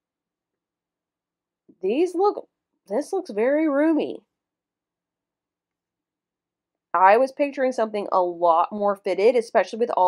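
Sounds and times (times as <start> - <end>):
woman's voice: 1.8 - 4.2, 7.0 - 10.0.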